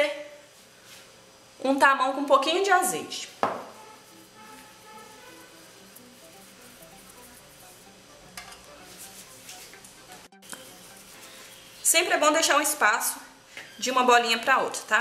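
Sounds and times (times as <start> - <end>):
soft background music: 2.4 - 15.0.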